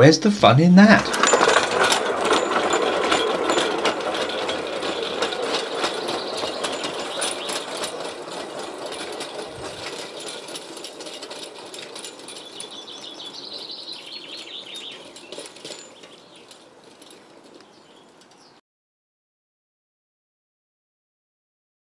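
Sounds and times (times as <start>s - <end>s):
rail trolley wheels rattling on rails: 0.8s - 18.6s.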